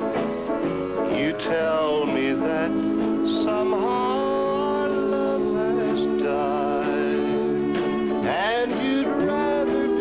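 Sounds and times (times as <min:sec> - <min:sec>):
band accompaniment: 0:00.0 - 0:10.0
country song singer: 0:00.0 - 0:10.0.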